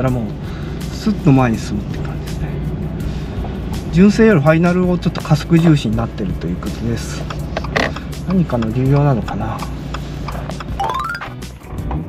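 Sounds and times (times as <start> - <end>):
car engine low drone: 0.0 - 12.0.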